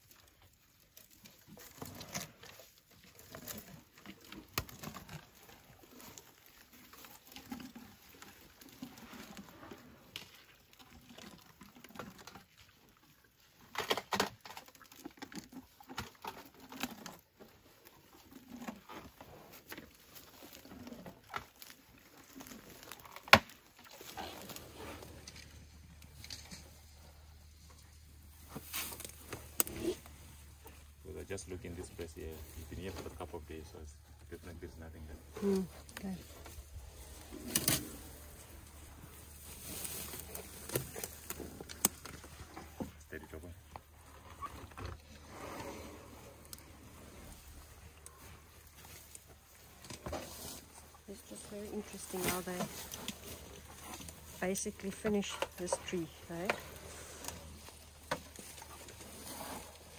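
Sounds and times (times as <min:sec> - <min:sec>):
bark and wood crunching: 0:00.0 - 0:59.9
elephants chewing bark: 0:00.0 - 0:59.9
wood snapping: 0:40.2 - 0:42.3.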